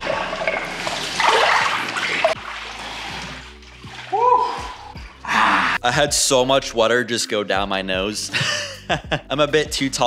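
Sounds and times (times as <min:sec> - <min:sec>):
water splashing and sloshing: 0:00.0 - 0:05.8.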